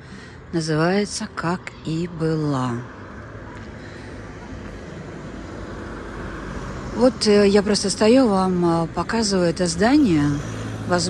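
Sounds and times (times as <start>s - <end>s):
car engine and tyre hum: 0.0s - 11.0s.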